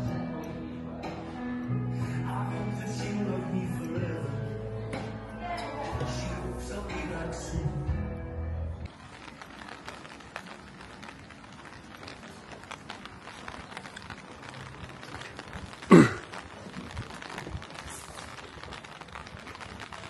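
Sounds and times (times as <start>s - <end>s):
light rain pattering: 8.8s - 20.0s.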